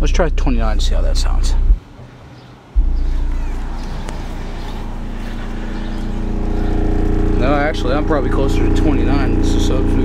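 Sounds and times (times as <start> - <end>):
subwoofer low sine tone hum: 0.0 - 1.8, 2.8 - 10.0.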